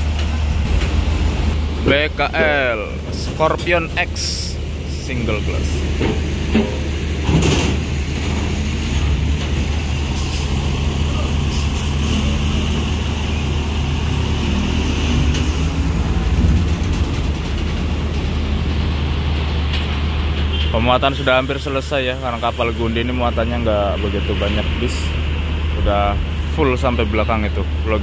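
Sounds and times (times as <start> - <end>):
diesel engine low drone: 0.0 - 28.0.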